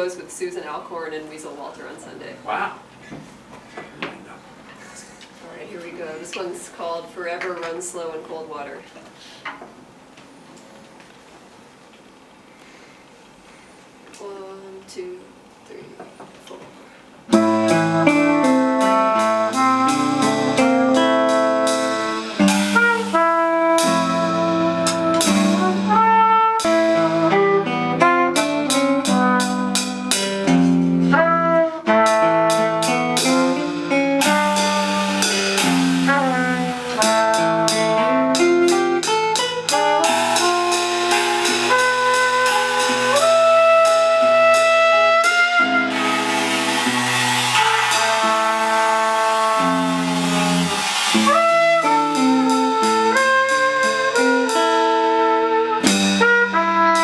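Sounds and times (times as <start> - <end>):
drum kit played with sticks: 17.1 - 57.0
cornet melody: 17.3 - 57.0
electric guitar: 17.3 - 57.0.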